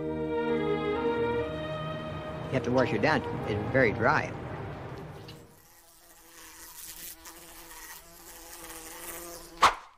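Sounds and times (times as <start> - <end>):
flying insect buzzing: 5.3 - 9.9.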